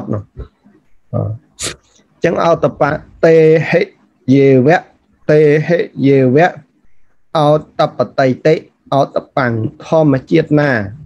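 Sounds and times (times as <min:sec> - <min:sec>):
hissing breath: 0:01.6 - 0:02.0.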